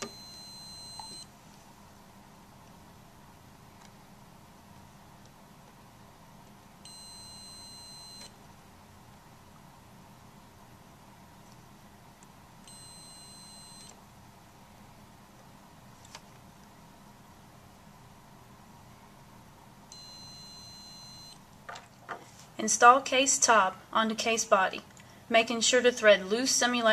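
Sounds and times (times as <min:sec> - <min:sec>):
multimeter continuity beep: 0:00.0 - 0:01.3, 0:06.8 - 0:08.4, 0:12.6 - 0:14.0, 0:19.9 - 0:21.4.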